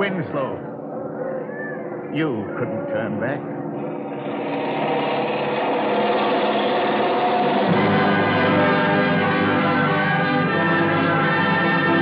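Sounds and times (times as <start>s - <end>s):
orchestral held chords: 3.3s - 12.0s
low bass chord: 3.8s - 12.0s.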